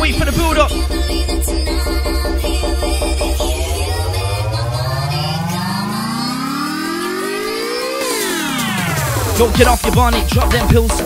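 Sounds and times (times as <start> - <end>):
rising synth sweep: 0.0 - 9.7.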